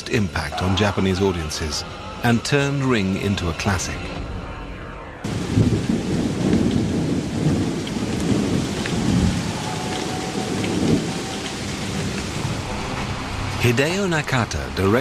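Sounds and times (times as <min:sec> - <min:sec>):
rain-like hiss: 0:05.3 - 0:15.0.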